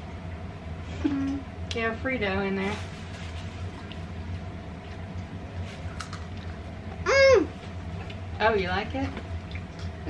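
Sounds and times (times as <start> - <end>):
faint steady hum: 0.0 - 10.0
high-pitched vocal exclamation: 7.1 - 7.6.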